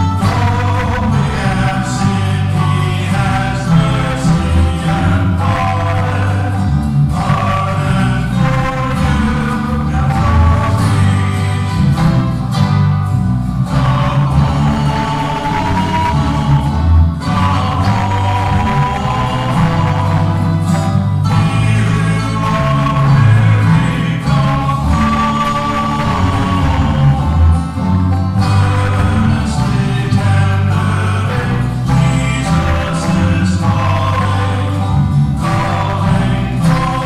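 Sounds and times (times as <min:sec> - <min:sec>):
men singing together: 0:00.0 - 0:12.9, 0:13.6 - 0:37.0
acoustic guitars: 0:00.0 - 0:37.0.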